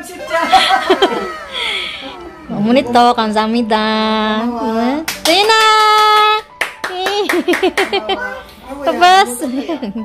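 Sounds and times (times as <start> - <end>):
hands clapping quickly: 5.0 - 8.0.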